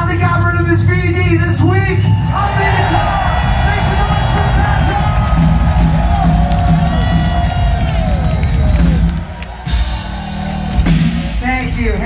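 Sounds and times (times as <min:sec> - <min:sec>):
crowd cheering: 0:02.0 - 0:12.0
live rock band playing loudly: 0:02.4 - 0:12.0.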